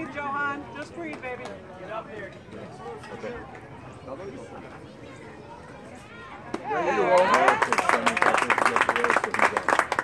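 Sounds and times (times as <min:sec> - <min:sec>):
spectators clapping: 0:07.0 - 0:10.0.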